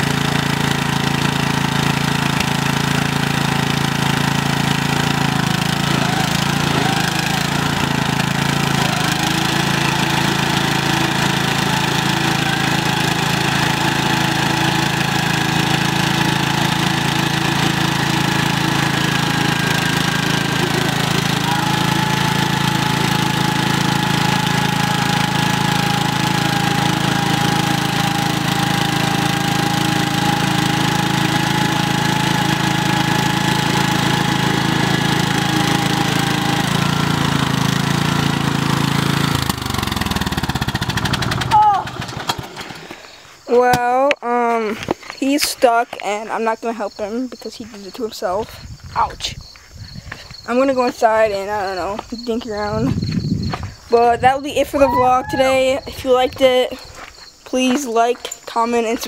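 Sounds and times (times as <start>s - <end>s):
lawn mower engine running: 0.0s - 45.0s
wheels spinning in mud: 0.0s - 46.2s.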